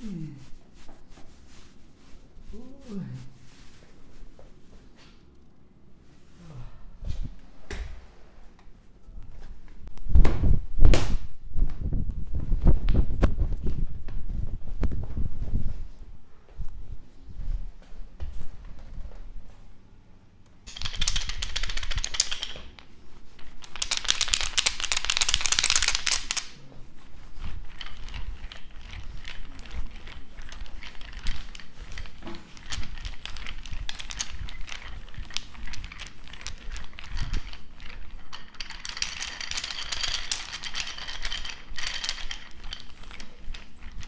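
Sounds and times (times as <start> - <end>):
wooden massage roller clicking: 20.7 - 44.0.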